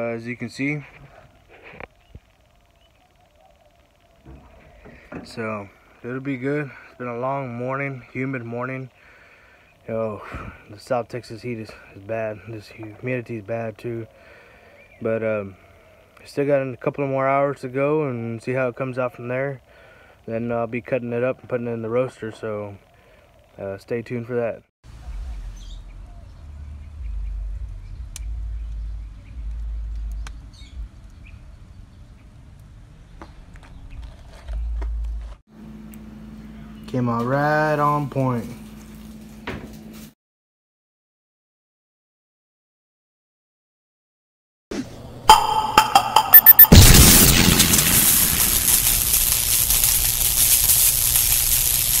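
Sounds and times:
faint bird chirps: 1.9 - 5.1
steady hiss: 46.8 - 52.0.

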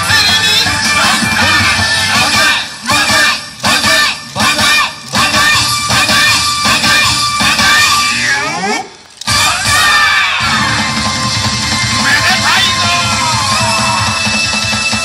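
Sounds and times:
dance music from loudspeakers: 0.0 - 8.6, 9.2 - 15.0
group shouting: 9.3 - 10.9, 12.1 - 14.2.

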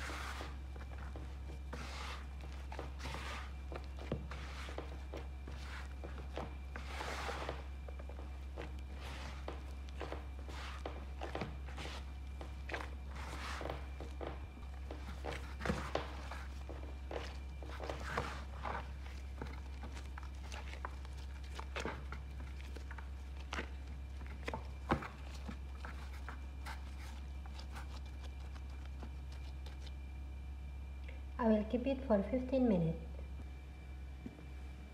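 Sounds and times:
hands kneading bread dough: 0.0 - 31.3
steady low hum: 0.0 - 34.9.

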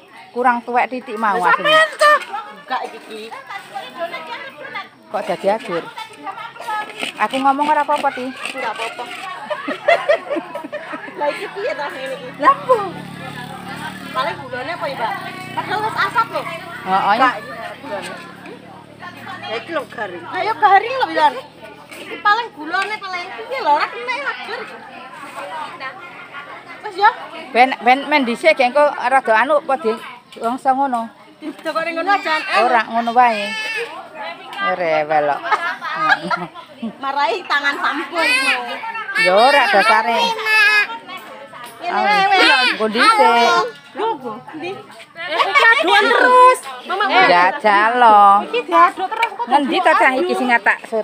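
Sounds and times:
background chatter: 0.0 - 51.0.

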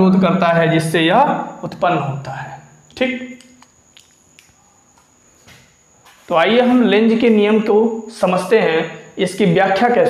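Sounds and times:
high-pitched whine: 0.0 - 10.0.

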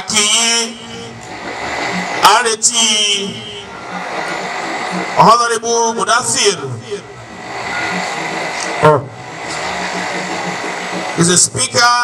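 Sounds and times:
man speaking into a microphone: 0.0 - 1.1, 2.2 - 3.6, 5.2 - 7.1, 11.2 - 12.0
steady background noise: 0.0 - 12.0.

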